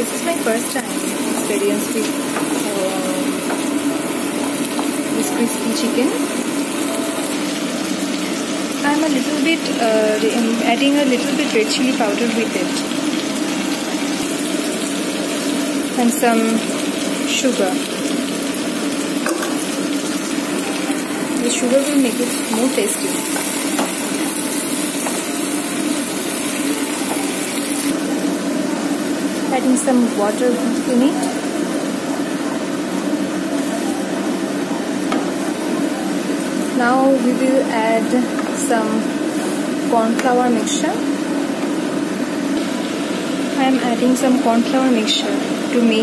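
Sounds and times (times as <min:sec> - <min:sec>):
woman speaking: 0:00.0 - 0:03.4, 0:05.1 - 0:06.4, 0:08.8 - 0:12.9, 0:16.0 - 0:16.7, 0:17.3 - 0:17.9, 0:20.6 - 0:23.3, 0:29.5 - 0:31.4, 0:36.7 - 0:39.1, 0:39.9 - 0:41.1, 0:43.6 - 0:46.0
vegetables sizzling in a frying pan: 0:00.0 - 0:46.0.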